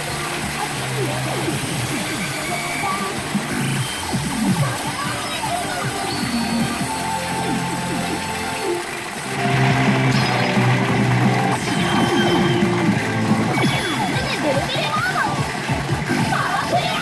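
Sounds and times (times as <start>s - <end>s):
electronic sound effects: 0.0s - 16.8s
pachinko machine music: 0.0s - 17.0s.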